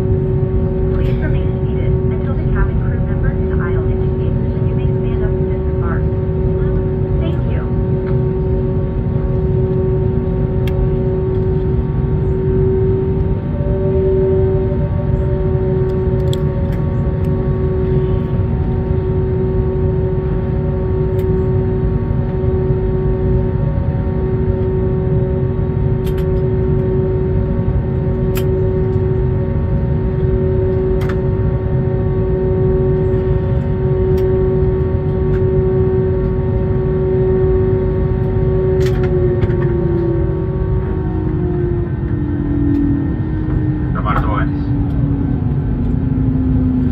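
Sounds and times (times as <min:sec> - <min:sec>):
aircraft cabin rumble: 0:00.0 - 0:46.9
steady hum: 0:00.0 - 0:46.9.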